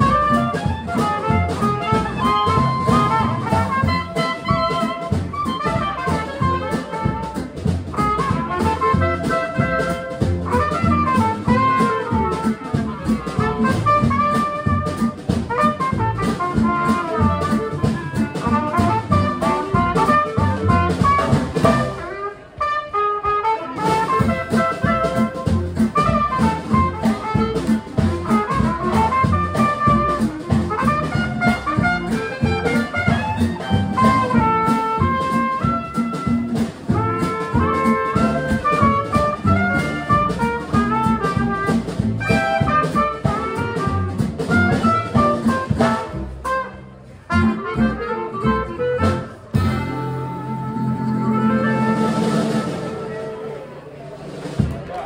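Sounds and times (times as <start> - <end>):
upright bass: 0.0 - 22.2, 23.8 - 53.4
acoustic guitar: 0.0 - 22.8, 23.4 - 54.8
trumpet: 0.0 - 54.0
clarinet: 0.0 - 54.1
drum kit: 0.0 - 55.0.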